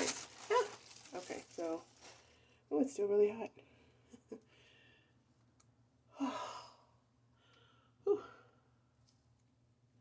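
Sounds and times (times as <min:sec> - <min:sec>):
woman sighing: 0:06.1 - 0:08.7.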